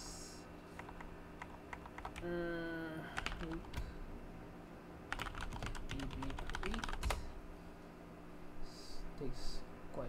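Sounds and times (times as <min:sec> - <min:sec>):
computer keyboard typing: 0:00.8 - 0:02.3, 0:03.2 - 0:03.9, 0:05.1 - 0:07.2.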